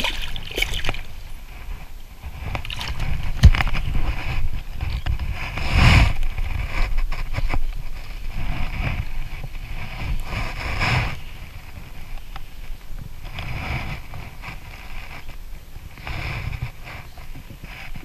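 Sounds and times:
water splashing and sloshing: 0.0s - 4.6s.

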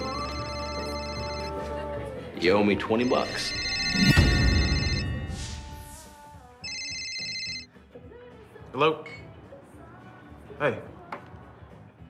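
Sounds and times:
mobile phone ringing: 0.0s - 1.8s, 2.9s - 5.4s, 6.6s - 7.7s.

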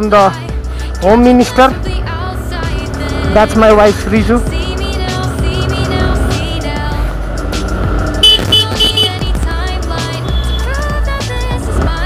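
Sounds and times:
music: 0.0s - 12.0s
motorcycle engine running: 1.1s - 12.0s
horn toots: 8.2s - 9.4s.

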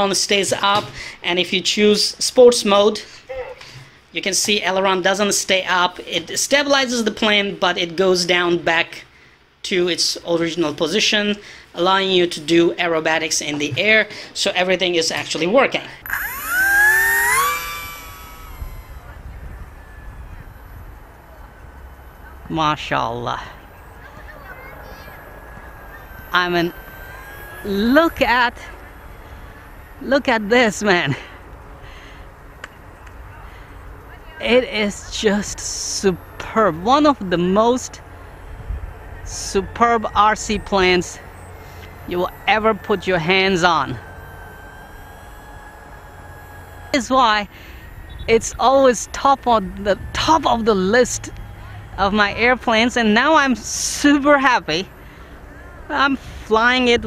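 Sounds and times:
electric motor and propeller whining: 15.9s - 57.0s
low wind rumble: 17.6s - 57.0s
wind rumble on microphone: 18.5s - 21.4s.

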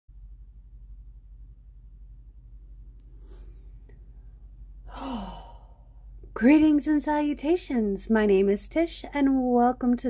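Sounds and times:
woman sighing: 4.9s - 5.9s.

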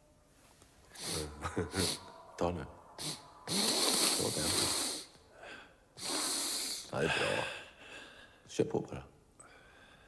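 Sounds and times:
faint sniff: 0.9s - 2.1s, 3.0s - 5.2s, 6.0s - 6.9s
man snorting through the nose: 3.0s - 5.1s.

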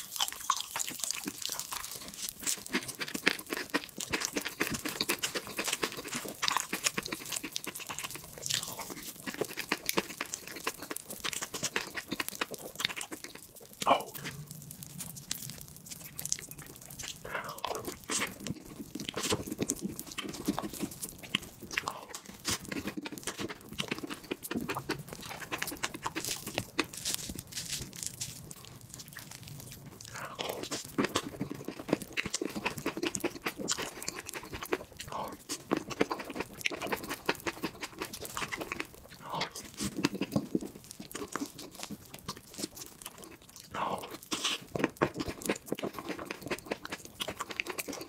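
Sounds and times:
lip smacking: 0.0s - 48.0s
person chewing with wet clicks: 0.0s - 48.0s.

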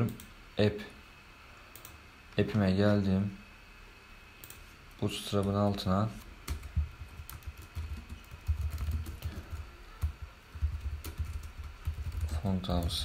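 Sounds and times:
typing on keyboard: 6.5s - 13.0s.

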